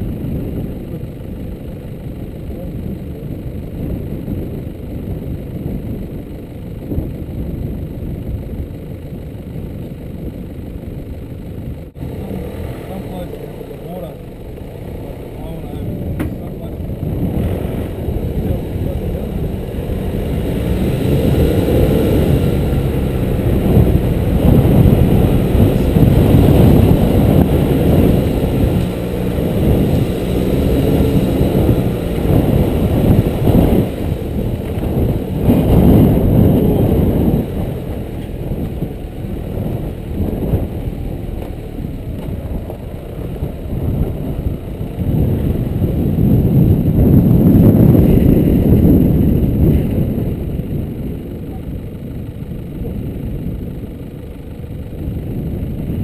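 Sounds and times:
truck engine rumble: 0.0s - 56.0s.

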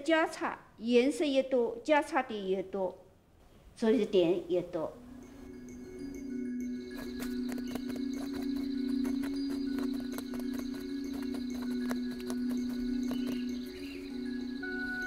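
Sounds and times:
background music low chord: 4.1s - 15.0s.

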